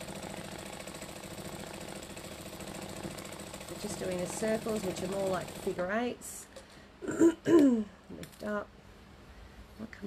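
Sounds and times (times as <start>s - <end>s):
sewing machine stitching: 0.0s - 6.0s.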